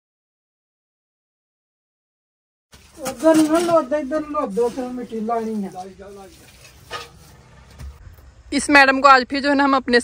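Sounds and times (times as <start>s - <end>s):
person speaking: 2.9s - 6.8s.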